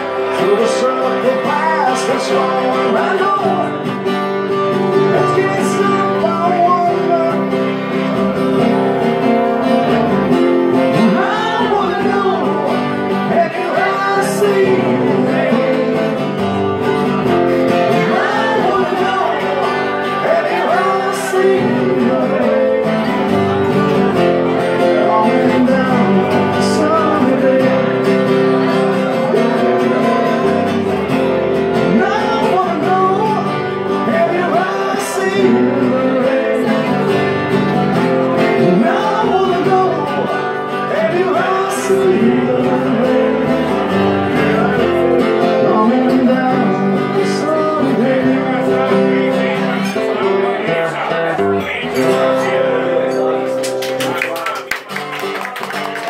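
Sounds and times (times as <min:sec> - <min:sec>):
acoustic guitars strumming: 0:00.0 - 0:56.0
man singing: 0:00.0 - 0:56.0.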